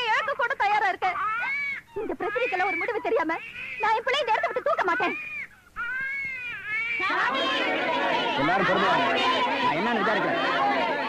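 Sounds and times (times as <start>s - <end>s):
infant crying: 1.1s - 9.6s.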